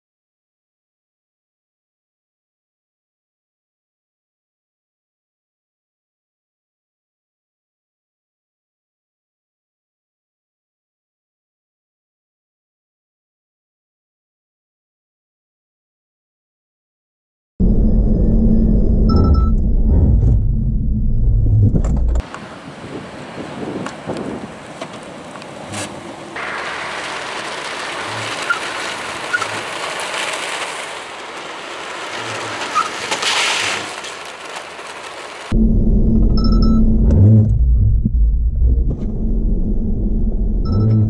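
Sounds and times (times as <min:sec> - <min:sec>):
high pulsing beep: 0:17.6 - 0:19.9, 0:35.6 - 0:38.0, 0:40.6 - 0:41.0
car cabin rumble: 0:18.0 - 0:22.2, 0:35.6 - 0:41.0
car cabin road and engine rumble: 0:18.0 - 0:22.6, 0:24.0 - 0:41.0.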